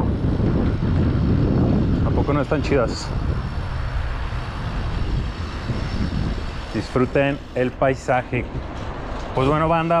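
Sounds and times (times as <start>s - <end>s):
bicycle tyres on pavement: 0.0s - 10.0s
wind buffeting microphone: 0.0s - 10.0s.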